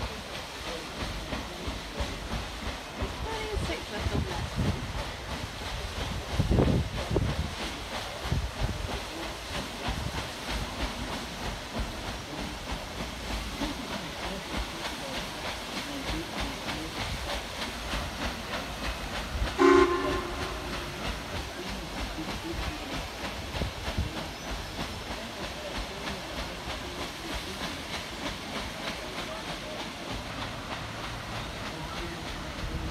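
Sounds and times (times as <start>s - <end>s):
paddle wheel rhythmic churn: 0.0s - 32.9s
steam whistle blast: 19.6s - 21.0s.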